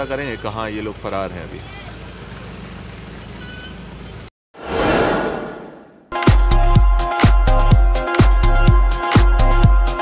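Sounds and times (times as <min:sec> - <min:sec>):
street background noise: 0:00.0 - 0:04.3.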